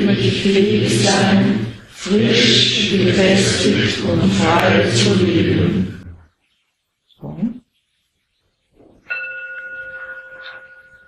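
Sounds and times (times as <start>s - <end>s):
meditation bell ringing: 9.1s - 11.0s.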